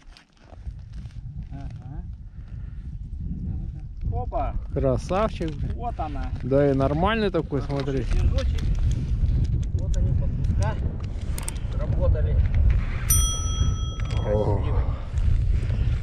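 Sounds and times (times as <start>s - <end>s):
wind buffeting microphone: 0.0s - 16.0s
bright bell ding: 13.1s - 14.5s.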